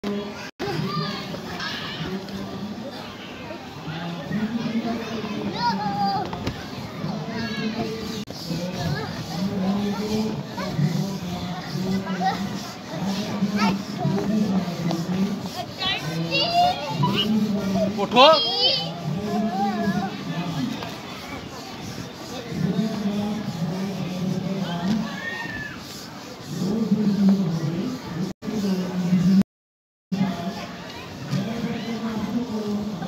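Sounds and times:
children chattering and calling out: 0:00.1 - 0:29.4, 0:30.2 - 0:33.0.

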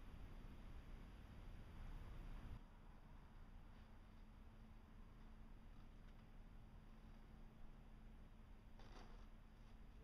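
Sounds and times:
soft rustle: 0:08.8 - 0:10.0.

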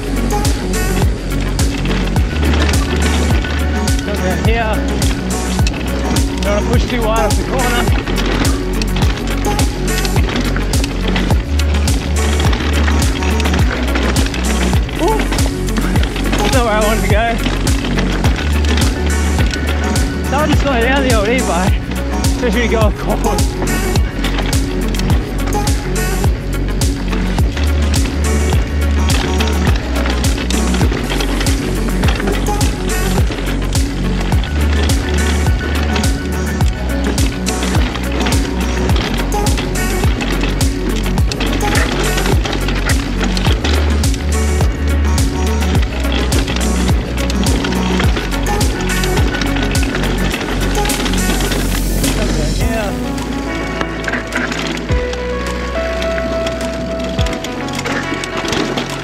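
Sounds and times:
mountain bike rattling on dirt trail: 0:00.0 - 0:59.0
music with heavy bass beat: 0:00.0 - 0:59.0.

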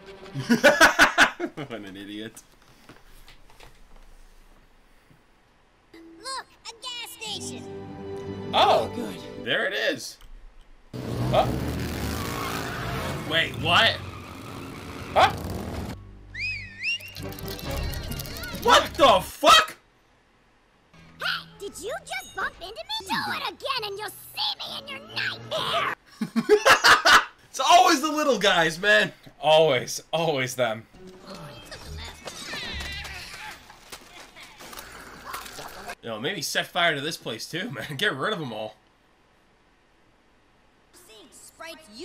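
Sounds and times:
background film music: 0:00.0 - 0:01.2, 0:07.2 - 0:09.7, 0:14.3 - 0:19.3, 0:30.9 - 0:33.2.

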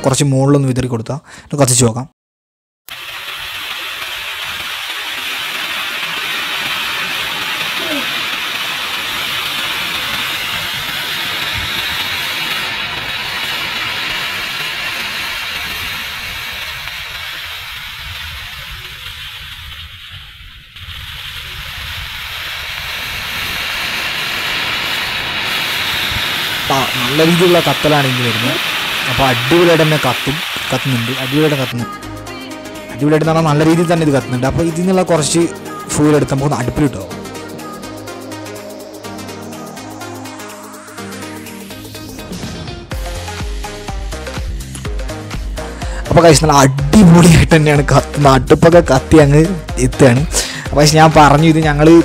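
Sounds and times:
mixture burning with a hiss: 0:02.9 - 0:52.0.

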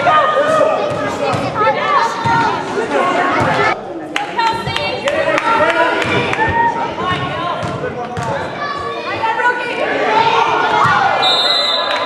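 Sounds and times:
voices echoing in gymnasium: 0:00.0 - 0:12.0.

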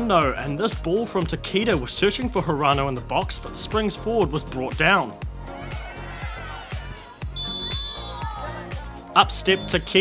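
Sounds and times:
music with steady beat: 0:03.8 - 0:10.0
referee whistle blast: 0:07.3 - 0:08.3, 0:09.3 - 0:10.0.

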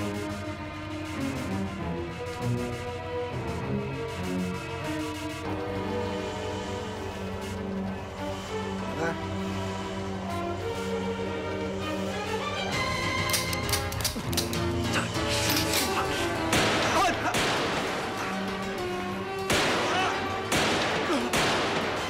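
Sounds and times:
film score music: 0:00.0 - 0:22.0.

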